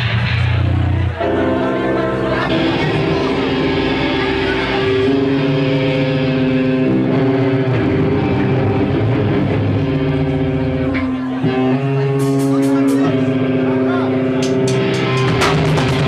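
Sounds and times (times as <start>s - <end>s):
distorted electric guitar chords: 0.0s - 16.0s.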